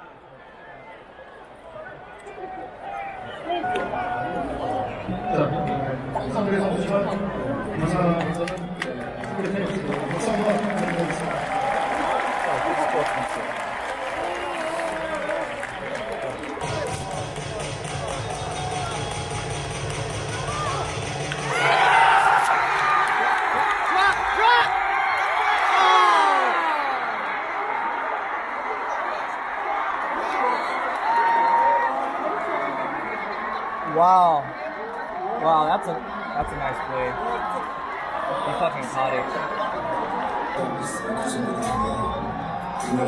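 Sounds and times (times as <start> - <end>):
crowd cheering and shouting: 0.0 - 6.1, 10.0 - 43.0
crowd chattering and calling out: 0.0 - 11.3, 14.1 - 43.0.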